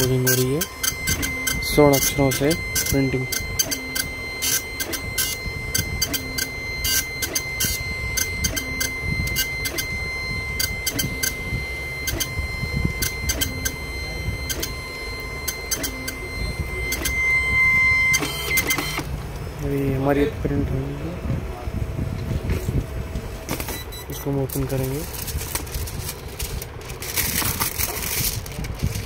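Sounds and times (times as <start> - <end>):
dot-matrix printer head running: 0.0 - 19.4
line feed clicks: 0.0 - 19.7
high whine: 0.0 - 29.0.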